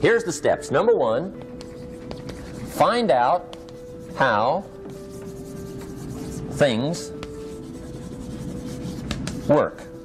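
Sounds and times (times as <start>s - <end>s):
soft background music: 0.0s - 10.0s
chalk scratching on chalkboard: 1.4s - 10.0s.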